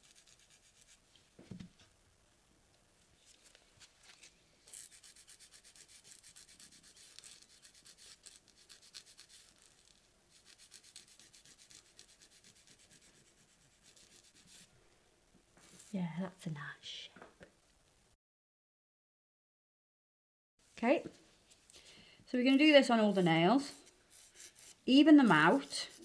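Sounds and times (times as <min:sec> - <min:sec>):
nail file rasping on nail: 0:00.0 - 0:01.0, 0:04.7 - 0:14.7, 0:22.5 - 0:26.0.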